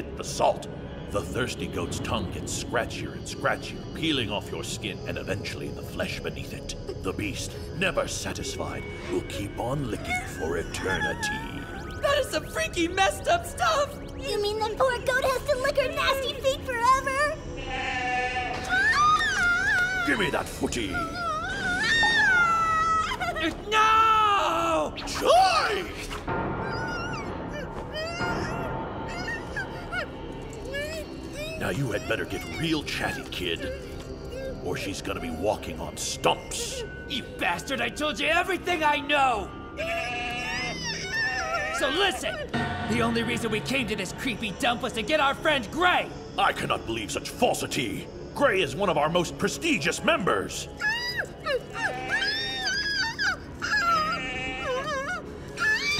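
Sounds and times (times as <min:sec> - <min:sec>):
high-pitched whimper-like cries: 0:18.2 - 0:23.6, 0:26.6 - 0:35.5, 0:39.8 - 0:42.6, 0:50.7 - 0:55.9.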